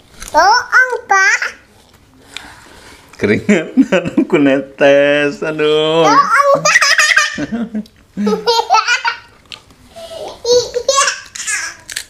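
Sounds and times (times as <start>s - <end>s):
hearty laughter: 7.2s - 8.7s.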